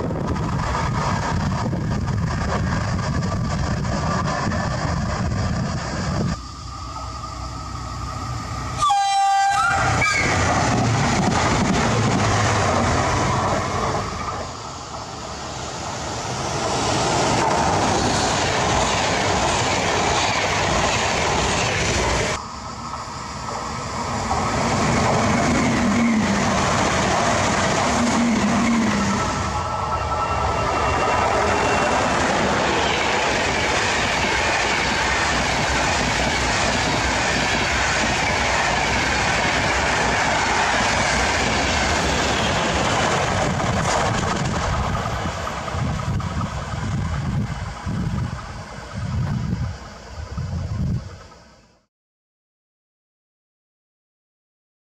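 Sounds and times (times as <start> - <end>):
passenger train passing: 0.0 - 51.9.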